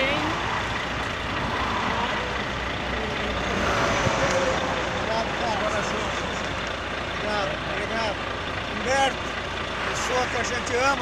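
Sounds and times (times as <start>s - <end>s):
highway traffic rush: 0.0s - 11.0s.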